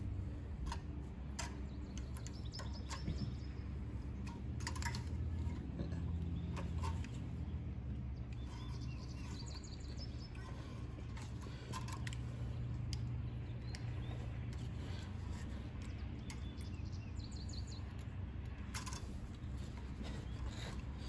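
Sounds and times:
steady low rumble: 0.0s - 21.0s
metal clicks and taps of pliers: 0.6s - 3.4s
faint bird chirps: 8.1s - 11.9s.

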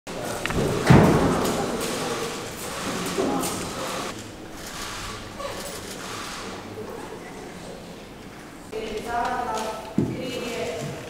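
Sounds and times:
low murmuring voices: 0.1s - 11.0s
heavy thud: 0.5s - 1.8s.

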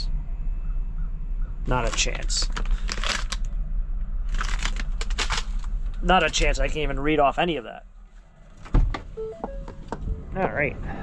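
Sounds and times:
plastic bag crinkling: 1.8s - 3.5s, 4.3s - 5.8s.

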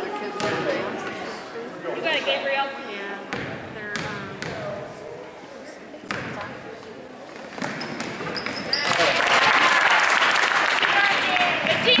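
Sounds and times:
echoing spectators' voices: 0.0s - 12.0s.

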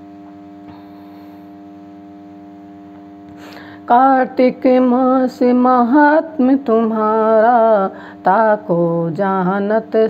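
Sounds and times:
drone of held tones: 0.0s - 10.0s.

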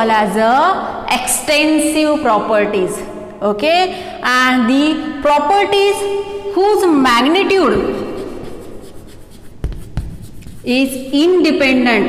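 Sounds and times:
chalk tapping: 7.2s - 11.6s
chalk scratching on chalkboard: 7.2s - 12.0s.

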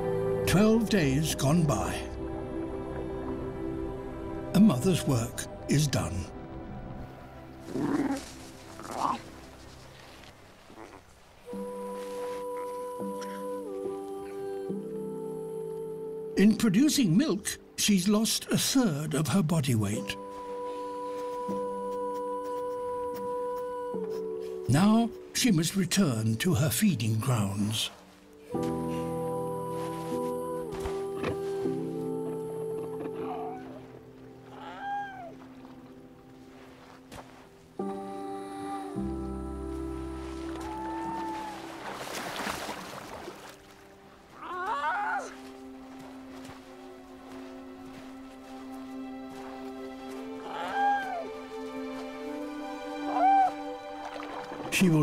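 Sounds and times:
seal pup calling: 7.6s - 9.4s, 10.7s - 11.1s, 21.1s - 25.3s, 32.9s - 35.5s, 44.4s - 45.4s, 50.4s - 51.3s, 53.0s - 53.6s.

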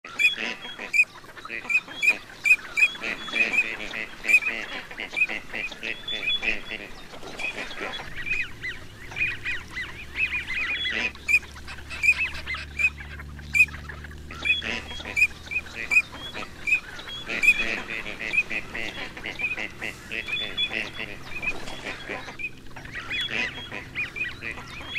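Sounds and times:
flock of ducks calling: 0.0s - 24.9s.

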